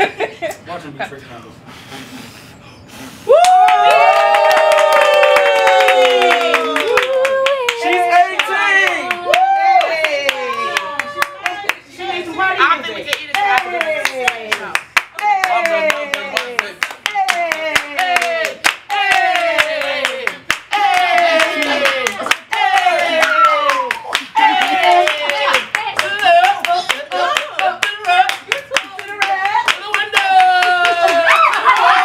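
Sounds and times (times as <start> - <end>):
group clapping in rhythm: 3.4 - 11.8, 13.0 - 32.0.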